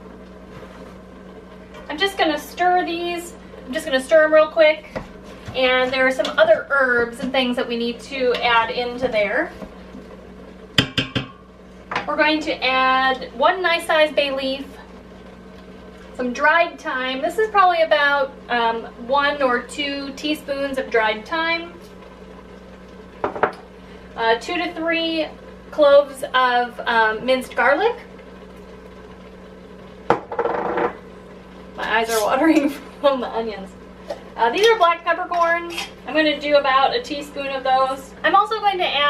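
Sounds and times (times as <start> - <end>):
steady low hum: 0.0 - 39.0
spoon knocking on metal pot: 10.8 - 11.4.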